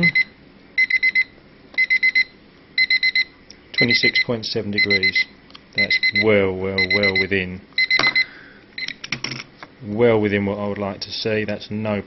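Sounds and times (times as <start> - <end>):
timer alarm beeping: 0.0 - 9.0.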